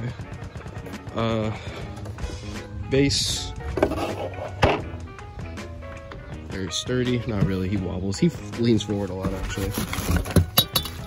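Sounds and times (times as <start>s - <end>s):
background music: 0.0s - 11.0s
plastic base thunk on wooden boards: 4.6s - 4.9s.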